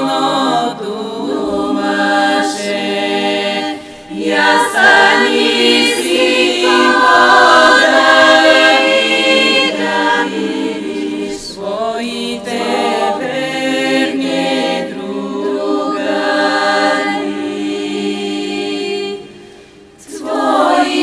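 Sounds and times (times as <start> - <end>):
women's choir singing a cappella: 0.0 - 21.0.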